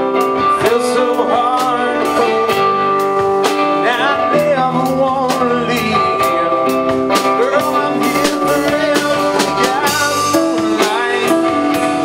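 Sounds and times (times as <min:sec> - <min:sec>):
drum kit beat: 0:00.0 - 0:12.0
electric guitars with bending notes: 0:00.0 - 0:12.0.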